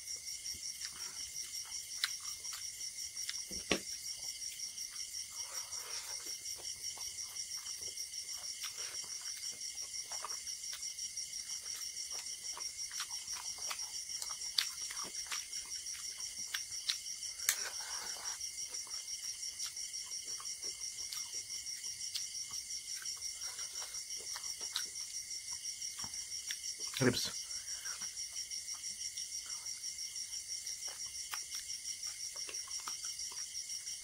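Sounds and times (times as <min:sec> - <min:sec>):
insects chirping: 0:00.0 - 0:34.0
chewing and wet mouth clicks: 0:00.8 - 0:03.4, 0:11.8 - 0:17.6, 0:19.6 - 0:25.0, 0:25.9 - 0:27.0, 0:30.6 - 0:33.5.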